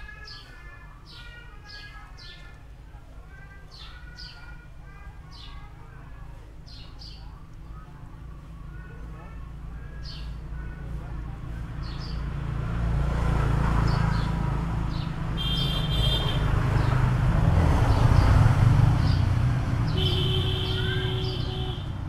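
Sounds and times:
vehicle engine rumbling: 0.0s - 22.0s.

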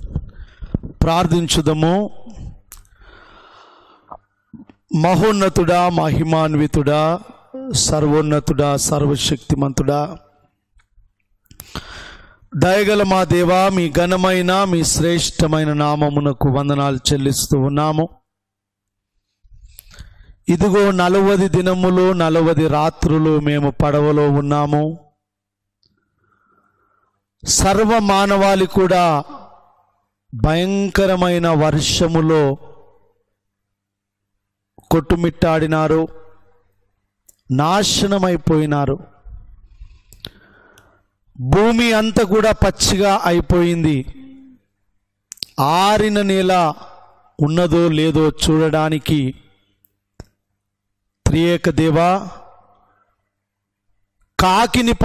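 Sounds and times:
man praying: 0.0s - 2.8s, 4.6s - 10.5s, 11.8s - 18.3s, 20.4s - 25.2s, 27.4s - 33.0s, 34.8s - 36.6s, 37.3s - 39.6s, 41.4s - 44.6s, 45.3s - 49.6s, 51.2s - 52.8s, 54.4s - 55.0s.

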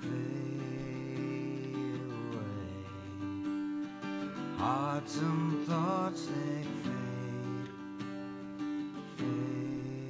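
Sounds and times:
acoustic guitar strummed slowly: 0.0s - 10.0s.

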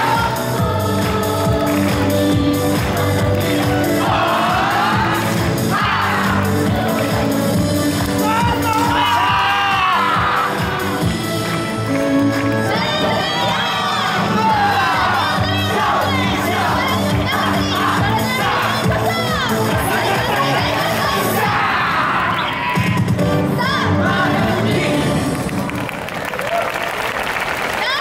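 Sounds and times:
festival dance music: 0.0s - 25.8s
crowd shouting and cheering: 0.0s - 28.0s.

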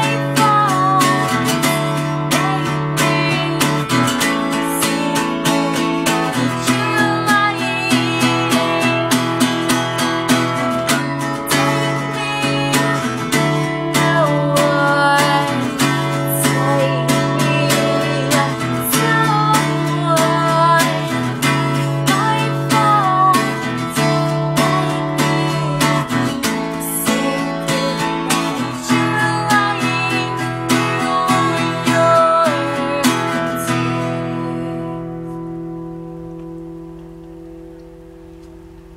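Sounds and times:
acoustic guitar strumming chords: 0.0s - 38.9s.

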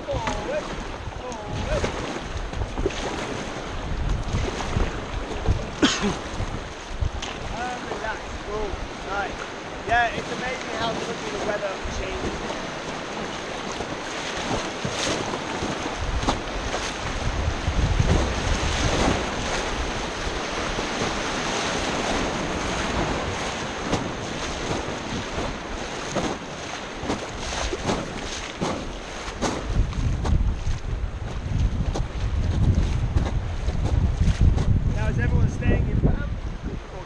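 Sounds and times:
river water rushing over rapids: 0.0s - 29.8s
wind buffeting microphone: 0.0s - 37.0s.

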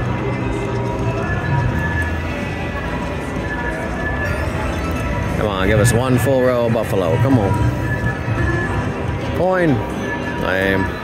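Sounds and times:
slot machine music and effects: 1.4s - 11.0s.

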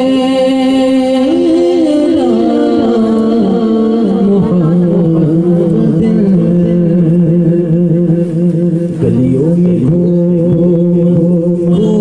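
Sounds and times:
person singing devotional verse: 0.0s - 12.0s.

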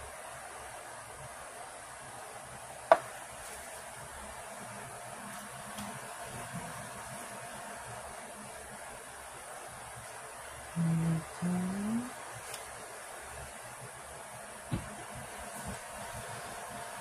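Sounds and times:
steady low hiss: 0.0s - 17.0s
person humming: 10.8s - 12.2s.

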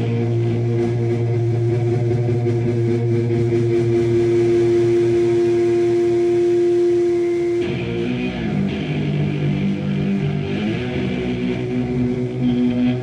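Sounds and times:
sustained electric guitar note: 0.0s - 13.0s.

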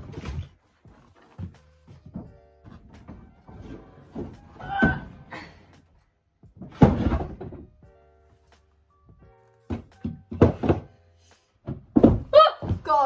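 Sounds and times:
wooden furniture knocks and thuds: 0.0s - 5.3s, 6.4s - 8.0s, 9.0s - 11.0s, 11.6s - 13.0s.

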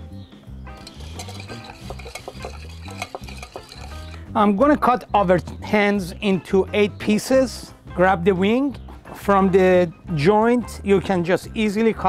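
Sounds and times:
whisk clinking against glass: 0.8s - 4.2s.

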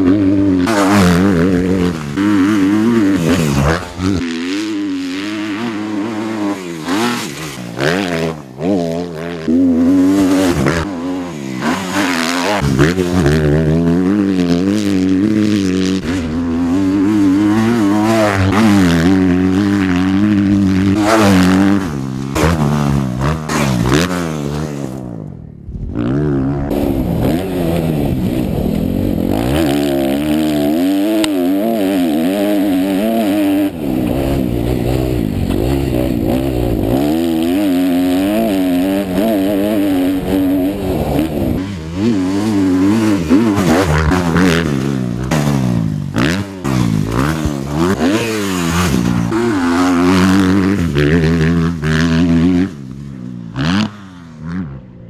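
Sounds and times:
motocross bike engine revving: 0.0s - 55.0s.

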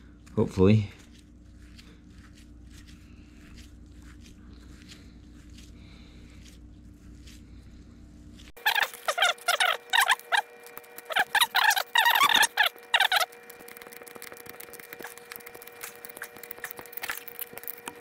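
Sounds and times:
faint steady hum: 0.0s - 18.0s
hose fitting squeaking: 8.6s - 14.3s.

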